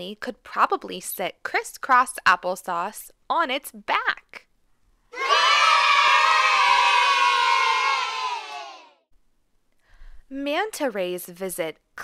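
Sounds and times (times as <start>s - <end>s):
children cheering: 5.2s - 9.0s.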